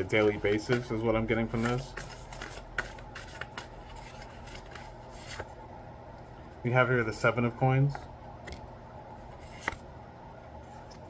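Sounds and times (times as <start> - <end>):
cards shuffling: 0.0 - 5.6, 7.9 - 9.9.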